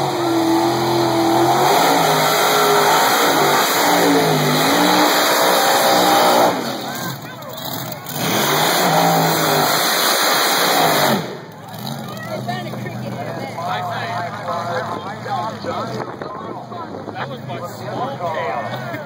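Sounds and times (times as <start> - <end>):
racing engines revving: 0.0 - 19.0.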